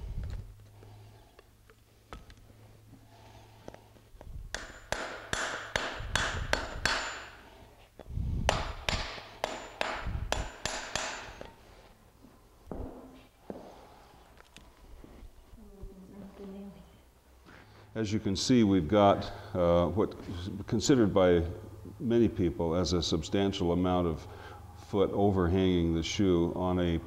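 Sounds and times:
hammer striking metal horseshoe: 0:04.5 - 0:07.5, 0:08.5 - 0:11.5.

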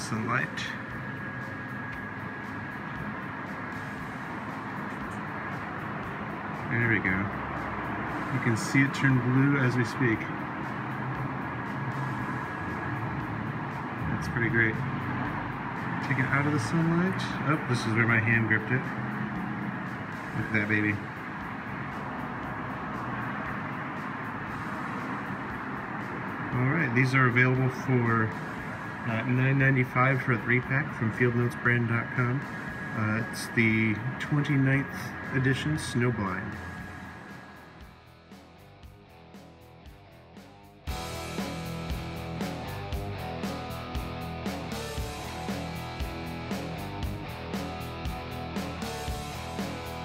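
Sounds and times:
steady background hum: 0:00.0 - 0:50.0
thin high whine: 0:00.0 - 0:50.0.

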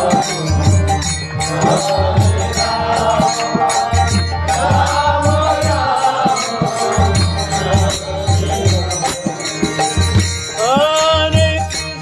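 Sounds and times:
harmonium melody: 0:00.0 - 0:12.0
high clinking percussion: 0:00.0 - 0:12.0.

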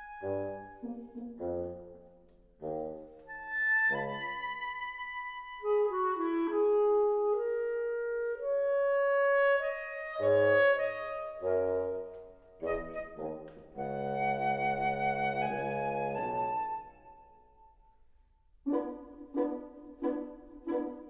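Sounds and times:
wind quintet playing chamber music: 0:00.0 - 0:17.8, 0:18.5 - 0:21.0.

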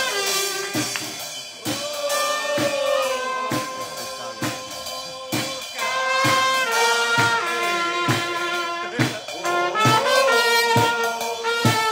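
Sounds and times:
drum kit steady beat: 0:00.0 - 0:11.9
trumpet holding long notes: 0:00.0 - 0:11.9.

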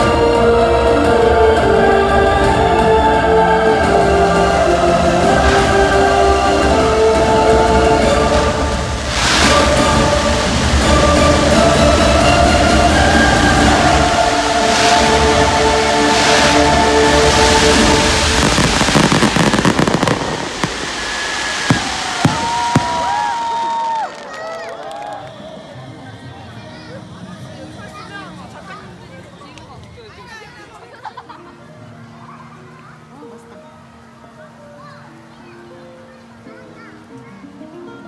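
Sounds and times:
loud show music: 0:00.0 - 0:23.1
people's voices: 0:00.0 - 0:38.0
fireworks crackling and popping: 0:05.3 - 0:11.9, 0:13.1 - 0:25.5
fireworks sharp bangs: 0:16.1 - 0:23.7.

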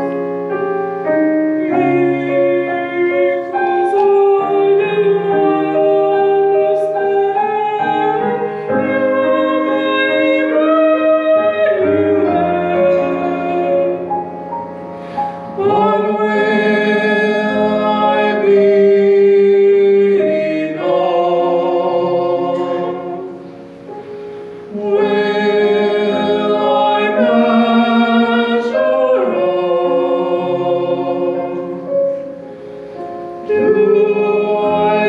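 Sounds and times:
choir singing with accompaniment: 0:00.0 - 0:35.0.

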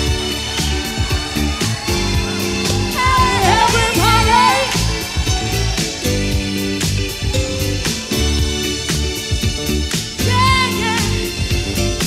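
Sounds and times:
soul-funk music with bass beat: 0:00.0 - 0:12.0
woman singing with vibrato: 0:02.9 - 0:05.6, 0:10.2 - 0:11.2.

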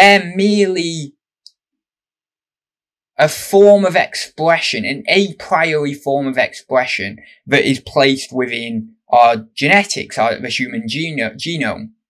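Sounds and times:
man speaking: 0:00.0 - 0:01.1, 0:03.2 - 0:11.9.

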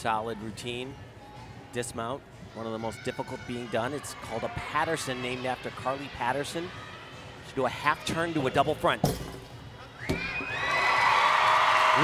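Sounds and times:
crowd cheering and shrieking: 0:10.0 - 0:12.0.

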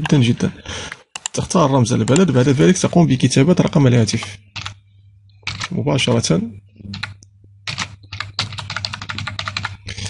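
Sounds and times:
computer keyboard typing: 0:00.8 - 0:03.0, 0:04.6 - 0:04.8, 0:05.4 - 0:05.8, 0:06.9 - 0:10.0.

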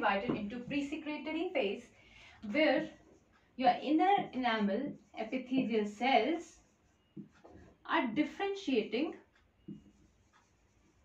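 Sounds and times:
marker writing on whiteboard: 0:00.0 - 0:11.0.

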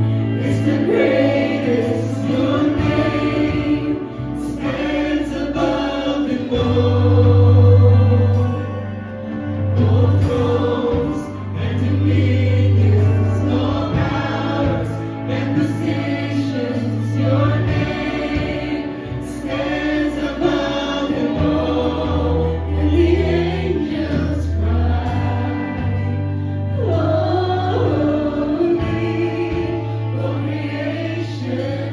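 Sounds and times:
deep bass notes: 0:00.0 - 0:31.9
electric guitar: 0:00.0 - 0:31.9
group singing worship music: 0:00.0 - 0:31.9.

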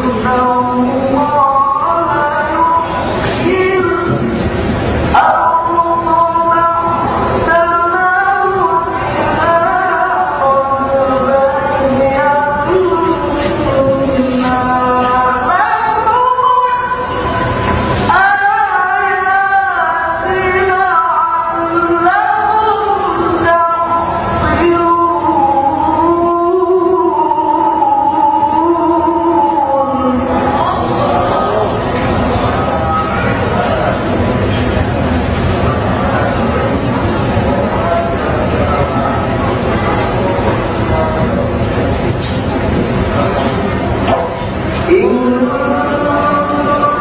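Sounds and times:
man reciting in melodic chant: 0:05.1 - 0:17.5, 0:18.1 - 0:34.1, 0:44.2 - 0:47.0.

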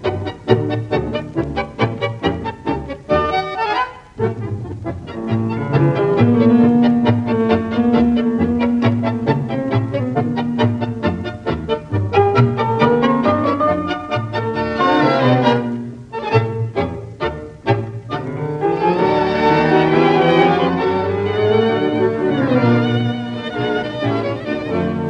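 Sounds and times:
tango orchestra with strings: 0:00.0 - 0:25.0.

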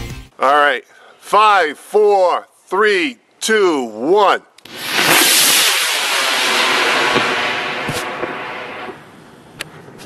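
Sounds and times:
rocket motor rushing hiss: 0:04.7 - 0:09.0.

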